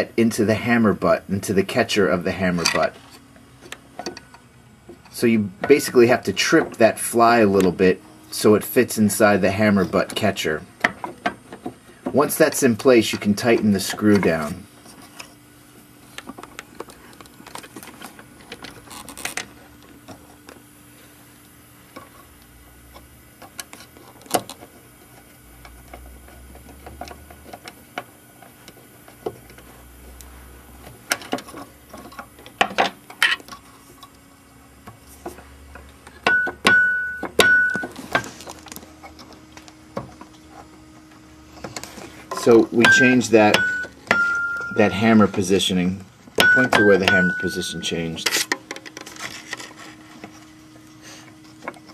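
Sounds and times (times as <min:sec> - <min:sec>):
clicks and knocks of piano repair: 0:31.0 - 0:33.5, 0:36.1 - 0:38.3, 0:41.6 - 0:44.8, 0:46.4 - 0:49.1
electric piano high notes: 0:42.8 - 0:45.0.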